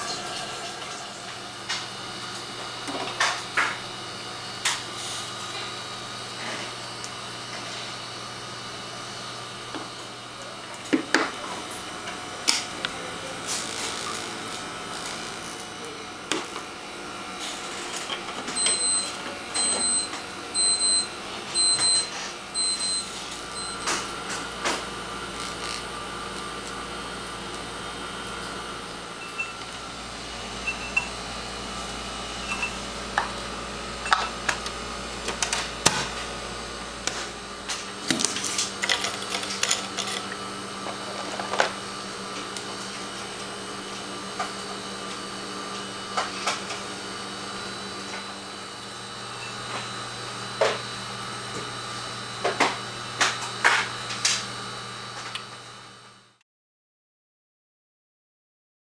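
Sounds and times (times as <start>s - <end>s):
vortex mixer humming: 0.0s - 54.9s.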